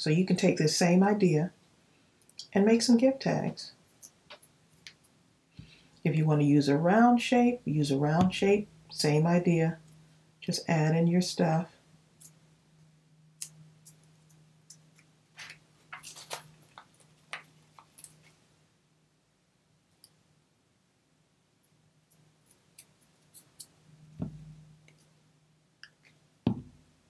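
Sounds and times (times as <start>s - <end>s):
faint steady hum: 0.0s - 27.0s
paper cut-outs clicking and rustling: 15.4s - 18.4s
soft thumps: 24.2s - 24.6s, 26.5s - 26.8s.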